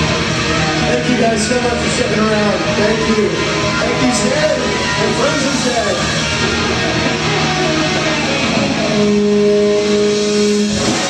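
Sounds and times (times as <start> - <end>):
band and room noise: 0.0 - 11.0
distorted electric guitar note: 0.0 - 11.0.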